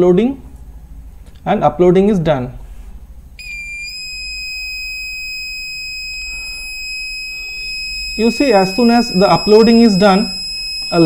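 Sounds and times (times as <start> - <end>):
high-pitched buzzer tone: 3.4 - 11.0.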